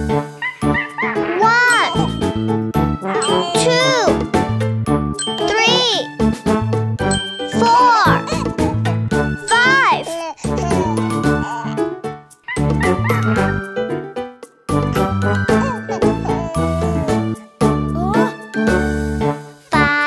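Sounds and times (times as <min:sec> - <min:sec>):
cartoon child voice counting: 0:01.3 - 0:02.2, 0:03.2 - 0:04.2, 0:05.4 - 0:06.1, 0:07.5 - 0:08.4, 0:09.5 - 0:11.8, 0:17.9 - 0:18.3, 0:19.7 - 0:20.0
children's song with jingling bells: 0:01.4 - 0:20.0.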